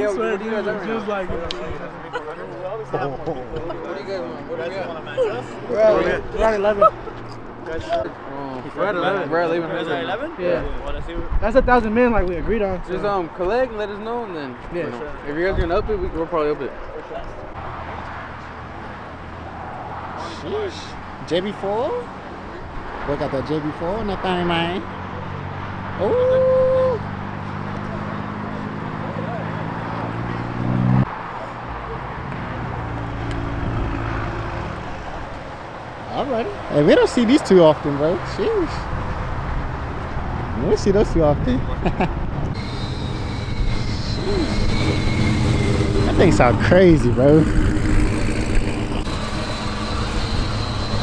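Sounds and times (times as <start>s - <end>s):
faint high whine: 42.6s - 46.5s.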